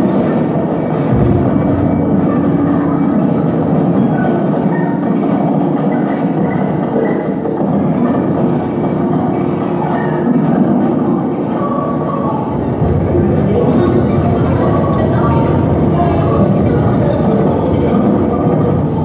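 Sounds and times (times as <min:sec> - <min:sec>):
rumbling noise music: 0:00.0 - 0:19.0
short low boom: 0:01.1 - 0:03.5.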